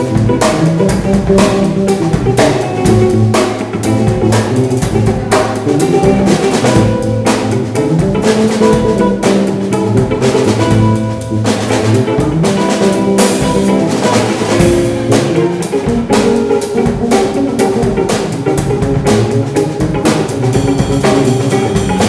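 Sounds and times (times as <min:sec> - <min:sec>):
drum and cymbal strikes: 0:00.0 - 0:22.0
electric bass: 0:00.0 - 0:22.0
electric guitar: 0:00.0 - 0:22.0.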